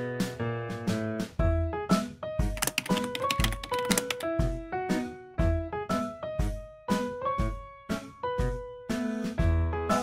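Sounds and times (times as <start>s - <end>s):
piano background music: 0.0s - 10.0s
typewriter typing clicks: 2.6s - 4.2s.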